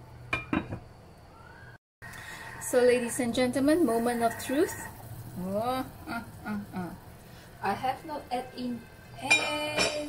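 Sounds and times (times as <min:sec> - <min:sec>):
glass lid clinking on metal pan: 0:09.2 - 0:10.0.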